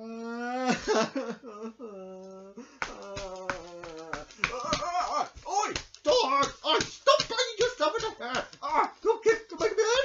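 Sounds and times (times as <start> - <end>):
sharp clicks and taps: 2.8 - 8.8
man wailing: 2.9 - 9.0.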